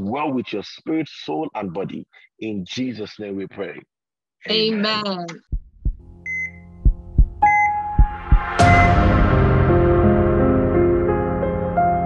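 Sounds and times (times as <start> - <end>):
low heartbeat thumps: 5.3 - 9.3
higher beep: 6.2 - 6.7, 7.4 - 9.0
short electronic beep: 6.3 - 6.7, 7.4 - 7.9, 8.6 - 9.0.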